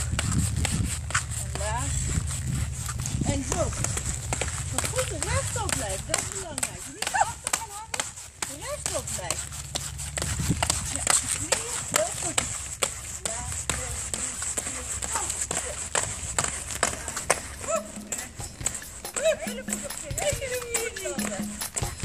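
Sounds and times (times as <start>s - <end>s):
rebound boots clacking on ground: 0.0s - 22.0s.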